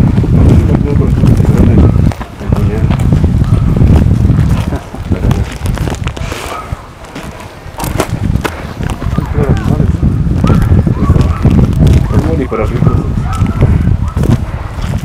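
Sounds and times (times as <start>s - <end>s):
footsteps on dirt trail: 0.0s - 15.0s
low microphone rumble: 0.0s - 15.0s
sharp crunches and clicks: 0.6s - 9.8s.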